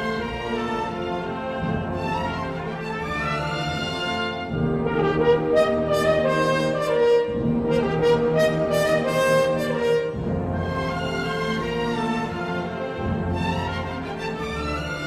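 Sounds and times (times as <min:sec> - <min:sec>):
brass sustained chords: 0:00.0 - 0:15.0
slow orchestral music: 0:00.0 - 0:15.0.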